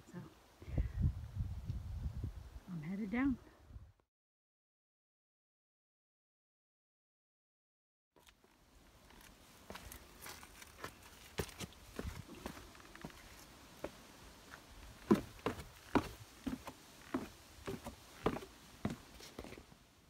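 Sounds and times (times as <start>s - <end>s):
footsteps on wooden ladder and rock: 8.2s - 19.7s.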